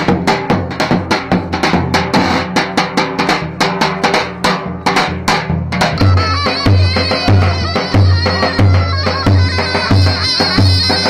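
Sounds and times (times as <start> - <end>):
deep folk drum beaten fast: 0.0 - 11.0.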